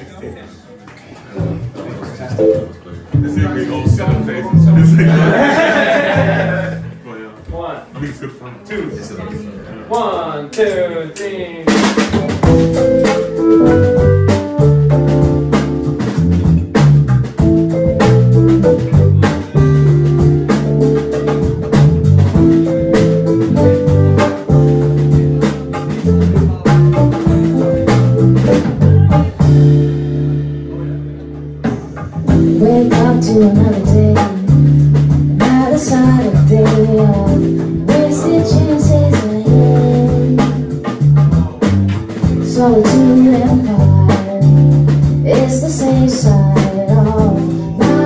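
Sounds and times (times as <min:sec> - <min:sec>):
drum kit: 0:01.3 - 0:07.0, 0:10.5 - 0:48.0
electric bass guitar: 0:03.1 - 0:07.0, 0:12.2 - 0:48.0
keyboard: 0:12.2 - 0:48.0.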